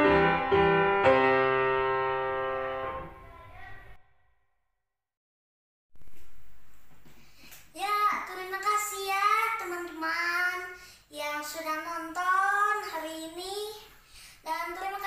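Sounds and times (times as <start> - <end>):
boy singing unaccompanied: 7.8 - 15.0.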